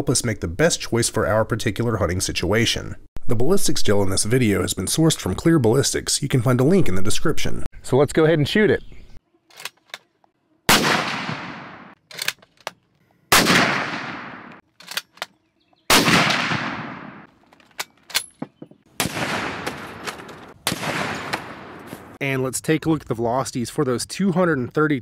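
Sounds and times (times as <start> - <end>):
rifle shots with echo: 10.7 - 12.0, 13.3 - 14.6, 15.9 - 17.3, 19.0 - 22.2
rifle bolt clicks: 12.1 - 12.9, 14.1 - 15.4.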